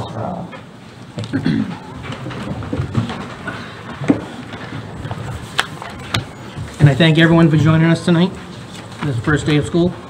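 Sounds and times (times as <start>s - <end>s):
chairs shifting and scraping: 1.1s - 7.8s.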